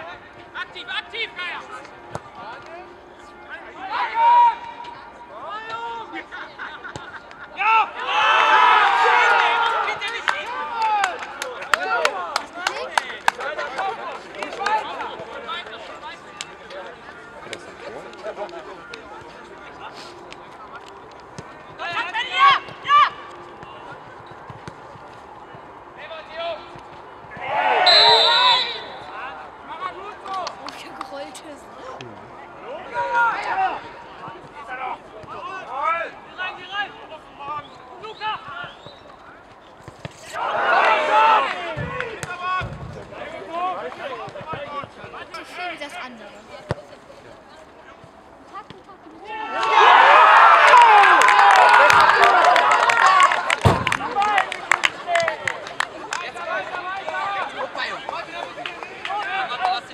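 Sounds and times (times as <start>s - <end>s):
players and spectators shouting: 3.6s - 6.4s, 7.5s - 16.9s, 21.7s - 24.2s, 27.3s - 39.1s, 40.2s - 46.0s, 49.2s - 59.9s.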